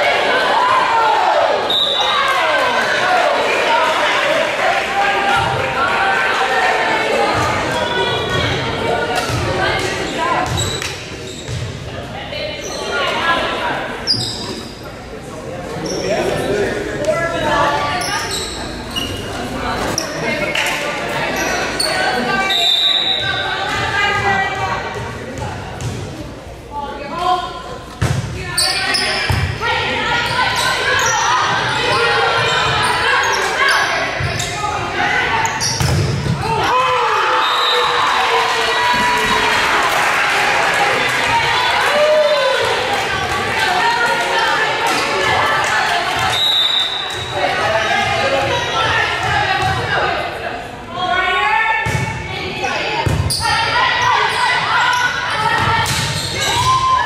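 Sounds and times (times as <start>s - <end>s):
voices in echoing gym: 0.0s - 57.0s.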